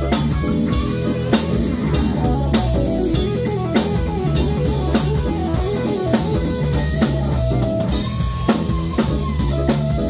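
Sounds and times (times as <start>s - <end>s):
live funk band playing: 0.0s - 10.0s.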